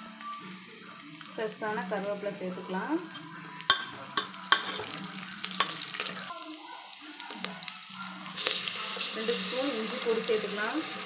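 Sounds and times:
food sizzling in hot oil: 0.0s - 11.0s
spoon clinking against pot: 3.7s - 4.9s.

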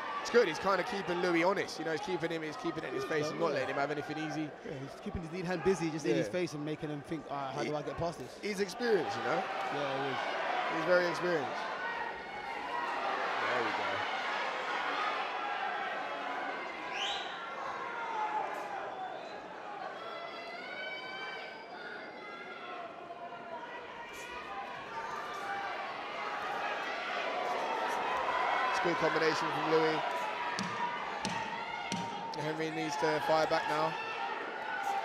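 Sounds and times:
crowd hubbub: 0.0s - 35.0s.

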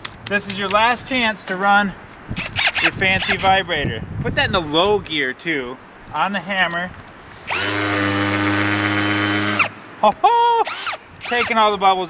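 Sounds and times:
hammer drill running: 7.5s - 9.7s, 10.7s - 11.5s.

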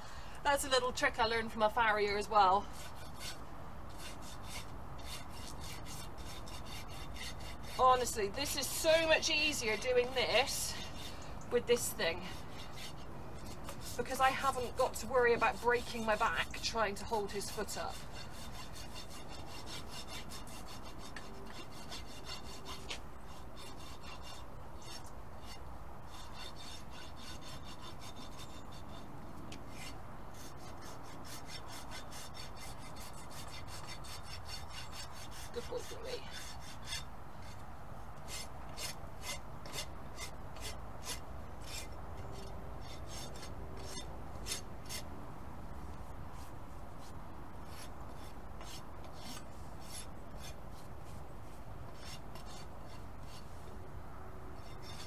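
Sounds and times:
hoof rasp scraping hoof: 2.1s - 45.2s, 45.8s - 53.8s, 54.6s - 55.0s.

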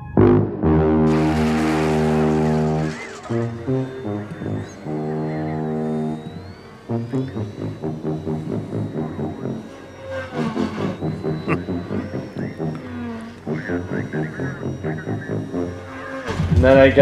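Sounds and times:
deep horn-like musical tones: 0.0s - 17.0s.

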